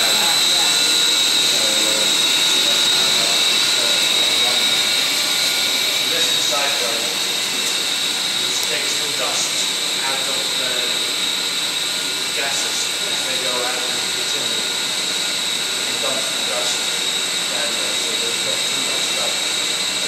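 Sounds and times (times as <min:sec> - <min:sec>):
boiler plant running noise: 0:00.0 - 0:20.0
high-pitched whine: 0:00.0 - 0:20.0.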